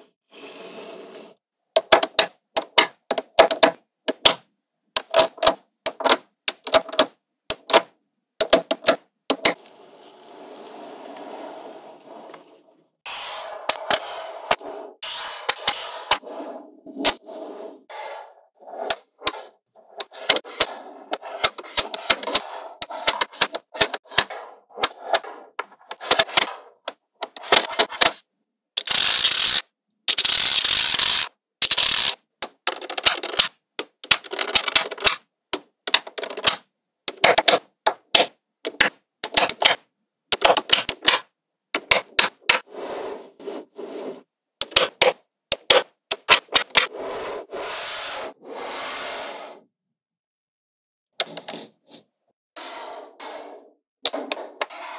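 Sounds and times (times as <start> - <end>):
plastic plate scraping over balls: 0.2 - 1.4, 9.3 - 28.2, 42.0 - 45.8, 46.4 - 49.6, 51.2 - 54.9.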